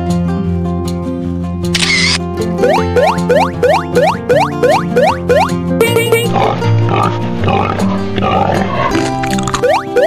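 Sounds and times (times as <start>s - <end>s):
cheerful children's music: 2.4s - 8.2s.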